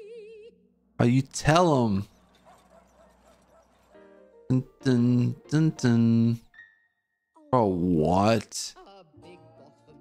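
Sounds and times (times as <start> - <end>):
small dogs barking and yipping: 2.1 - 4.0.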